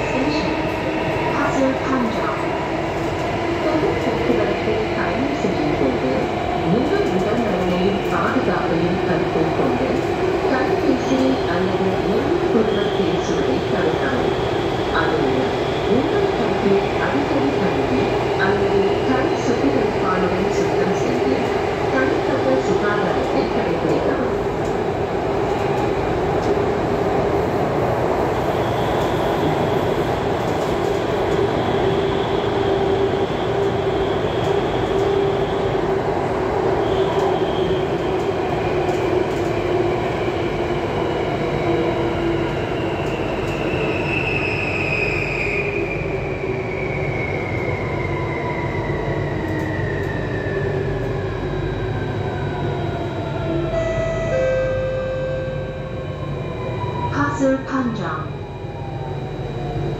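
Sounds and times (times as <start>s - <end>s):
metro train running noise: 0.0s - 59.9s.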